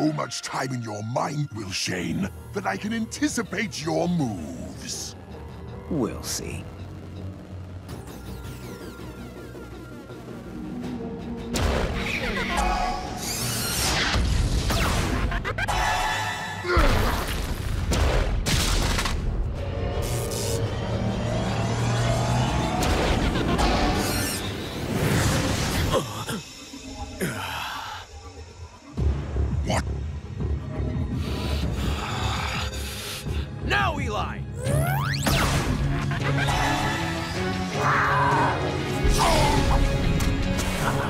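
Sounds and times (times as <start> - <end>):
dramatic cartoon music: 0.0 - 41.0.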